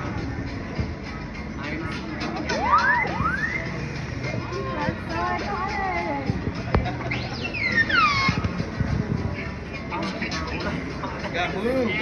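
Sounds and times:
murmur of crowd: 0:00.0 - 0:12.0
robot electronic whistles: 0:02.7 - 0:03.8, 0:07.2 - 0:08.4.

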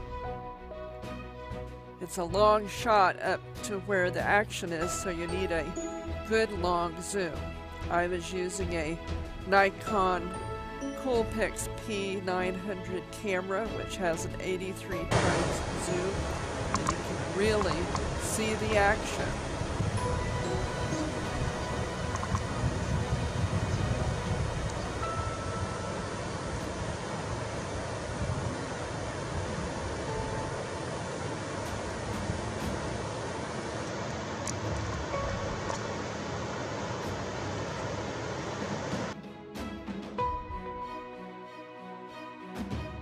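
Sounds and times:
faint music: 0:02.0 - 0:39.1.

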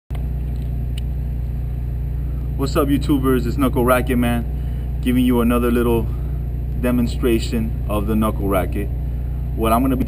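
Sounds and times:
steady low rumble: 0:00.1 - 0:10.0.

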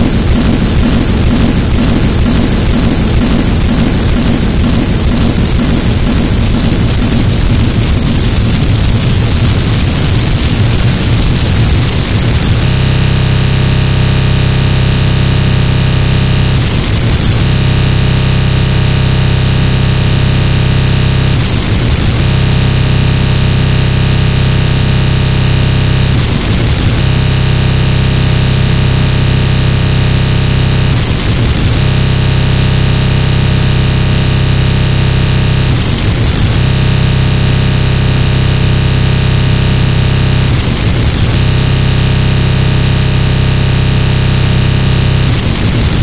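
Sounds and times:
harsh noise music: 0:00.0 - 0:46.0.

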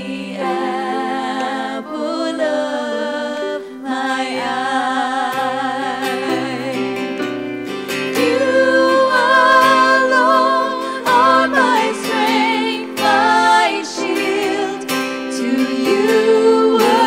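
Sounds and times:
women singing a worship song: 0:00.0 - 0:07.0, 0:08.0 - 0:17.0
acoustic guitar: 0:00.0 - 0:17.0
piano: 0:00.0 - 0:17.0.

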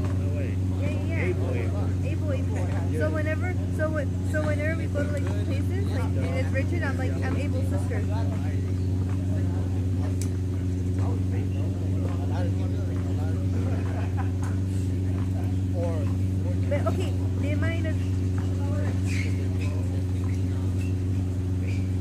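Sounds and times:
distant voices and shouts: 0:00.0 - 0:22.0
low machine hum: 0:00.0 - 0:22.0.

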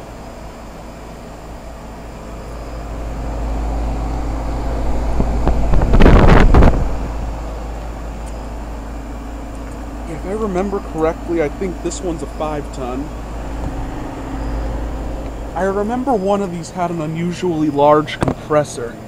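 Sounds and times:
heat pump compressor hum: 0:00.0 - 0:19.0
rush of fan air: 0:00.0 - 0:19.0.

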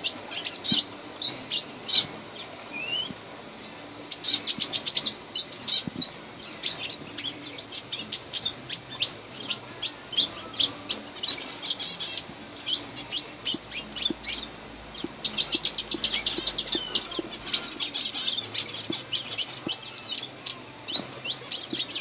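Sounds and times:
small birds chirping: 0:00.0 - 0:22.0.

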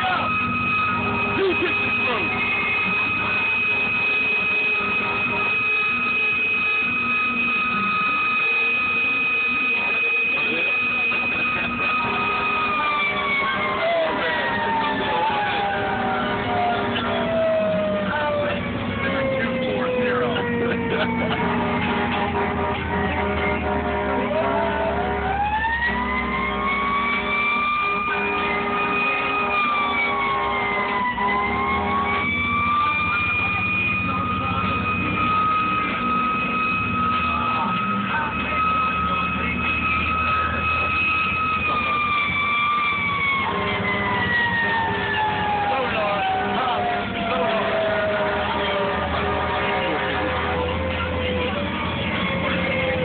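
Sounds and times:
siren wailing: 0:00.0 - 0:53.0
steady low drone: 0:00.0 - 0:53.0.

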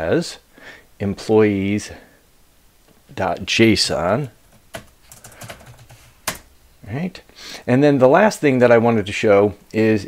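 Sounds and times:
computer keyboard typing: 0:03.7 - 0:06.5.

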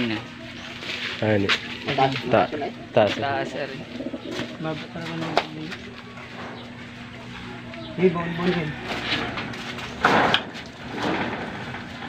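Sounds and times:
pigeons cooing: 0:01.7 - 0:09.9.

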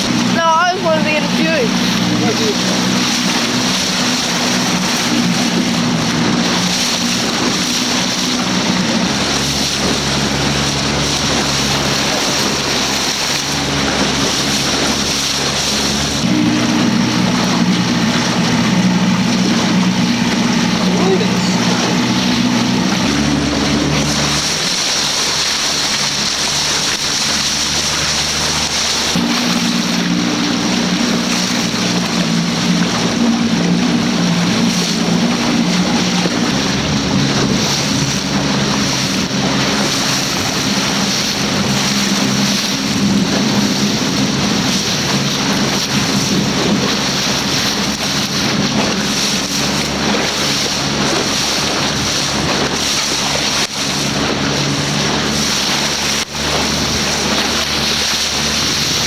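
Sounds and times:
motorboat engine droning: 0:00.0 - 0:59.0
water rushing past hull: 0:00.0 - 0:59.0.

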